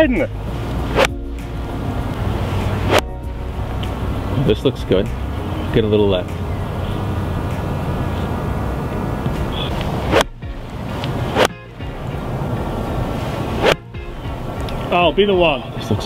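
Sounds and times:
steady rushing background: 0.3s - 16.0s
golf iron striking ball: 2.1s - 4.1s, 9.2s - 12.0s.

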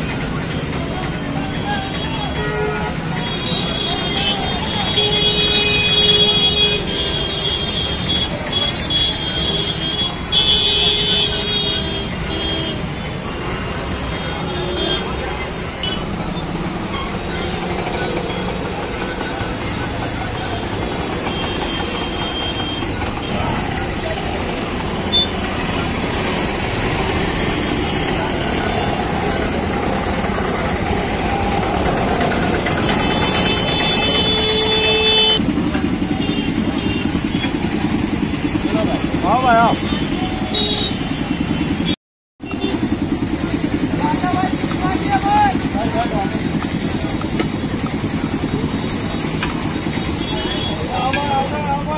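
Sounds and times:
crowd chatter: 0.0s - 42.0s, 42.6s - 51.9s
vehicle engines running: 0.0s - 51.9s
vehicle horns honking: 1.6s - 31.2s, 32.0s - 37.9s, 39.5s - 42.9s, 46.0s - 51.6s.

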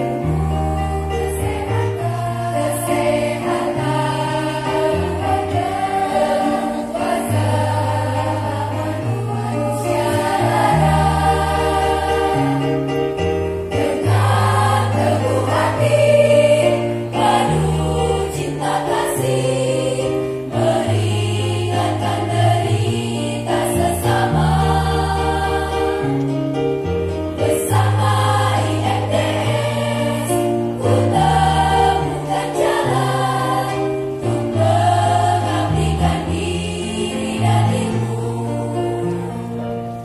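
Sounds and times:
choir singing a hymn: 0.0s - 40.0s.

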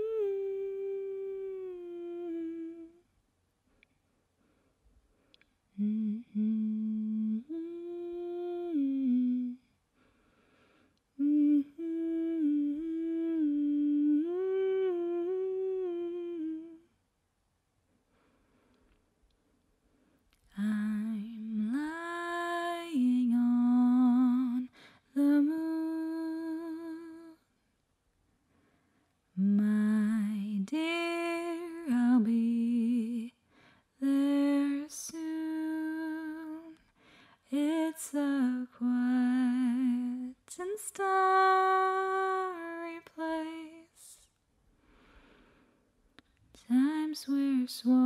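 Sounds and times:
woman humming a melody: 0.0s - 3.1s, 5.7s - 9.7s, 11.2s - 17.0s, 20.6s - 27.4s, 29.4s - 33.4s, 34.0s - 36.8s, 37.6s - 44.2s
woman singing a cappella: 0.0s - 3.1s, 5.7s - 9.7s, 11.2s - 17.0s, 20.5s - 27.5s, 29.3s - 44.4s, 46.5s - 48.0s.

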